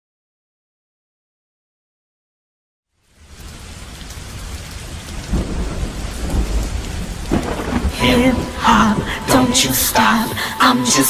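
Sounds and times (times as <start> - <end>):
rain-like hiss: 2.9 - 11.0
deep thunder-like rumble: 5.2 - 9.9.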